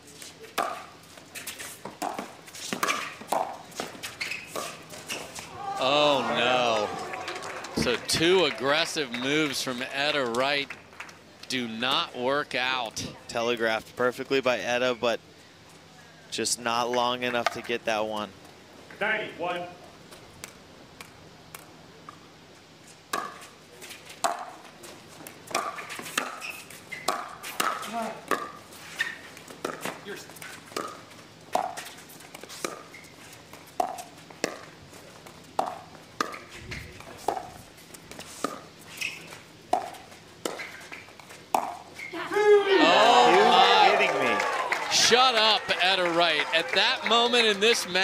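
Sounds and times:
people shouting and cheering: 0:05.5 - 0:09.8, 0:42.2 - 0:48.0.

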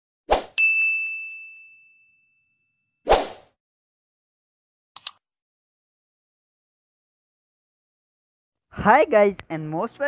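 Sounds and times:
bright ringing ding: 0:00.6 - 0:02.8.

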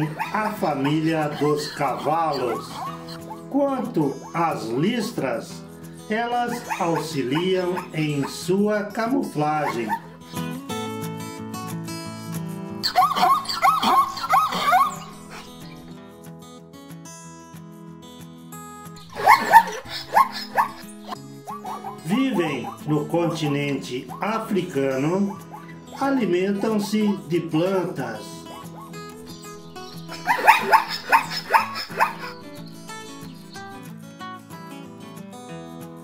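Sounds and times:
zebra yelping calls: 0:00.0 - 0:05.2, 0:06.1 - 0:08.6, 0:09.3 - 0:10.6, 0:12.8 - 0:16.0, 0:19.0 - 0:33.9
background music: 0:00.0 - 0:36.0.

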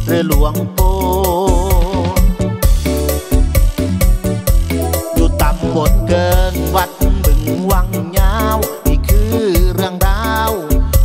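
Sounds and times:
person singing: 0:00.0 - 0:02.4, 0:04.7 - 0:11.0
bass: 0:00.0 - 0:11.0.

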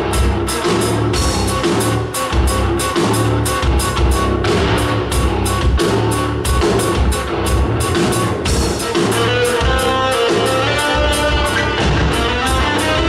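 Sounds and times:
drums: 0:00.0 - 0:13.0
stick guitar melody: 0:00.0 - 0:13.0
touch guitar bass line: 0:00.0 - 0:13.0.

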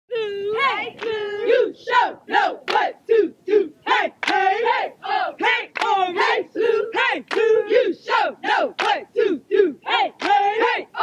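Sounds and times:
cheer squad chanting in unison: 0:00.1 - 0:11.0.

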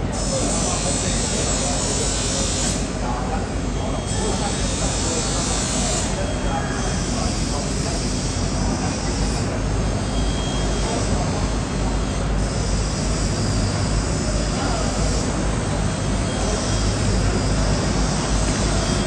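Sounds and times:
loud mechanical roar: 0:00.0 - 0:19.0.

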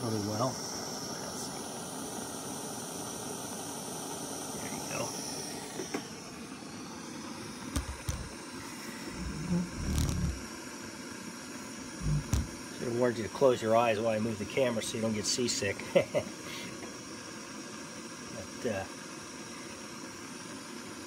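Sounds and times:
gas stove hissing: 0:00.0 - 0:21.0
dull knocks and bumps: 0:12.0 - 0:12.6.

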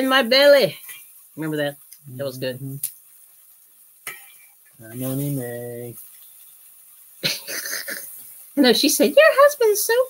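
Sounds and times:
fish sizzling in pan: 0:00.0 - 0:10.0
person coughing: 0:07.2 - 0:08.1.

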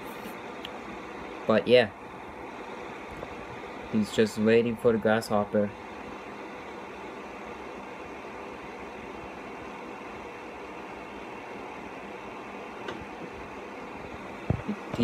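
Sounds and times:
room noise hiss: 0:00.0 - 0:15.0.

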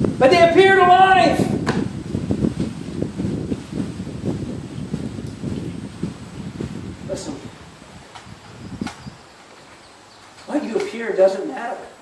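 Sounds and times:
wind buffeting microphone: 0:00.0 - 0:11.2.

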